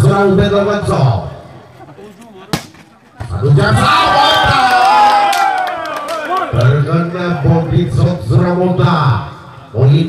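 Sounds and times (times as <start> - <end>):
faint crowd noise: 0.0 - 10.0
volleyball hit smack: 2.5 - 2.9.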